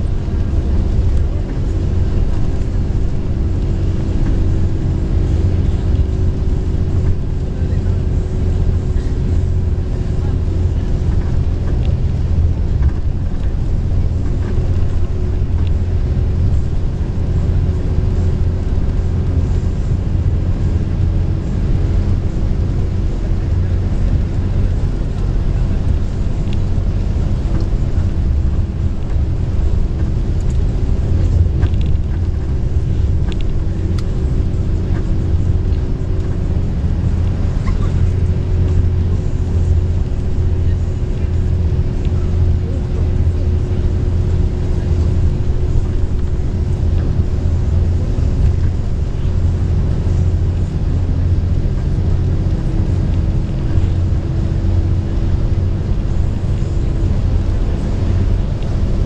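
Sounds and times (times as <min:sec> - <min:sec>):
bus engine and road rumble: 0:00.0 - 0:59.0
constant hum: 0:00.0 - 0:59.0.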